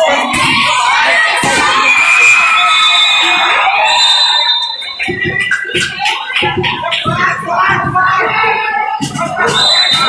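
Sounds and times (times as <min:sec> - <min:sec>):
spectators shouting: 0:00.0 - 0:10.0
shrill whistle blast: 0:01.4 - 0:05.8, 0:09.4 - 0:10.0.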